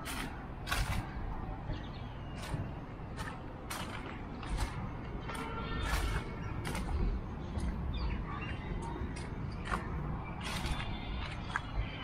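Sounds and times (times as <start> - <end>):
footsteps crunching on leaves: 2.4 - 7.2.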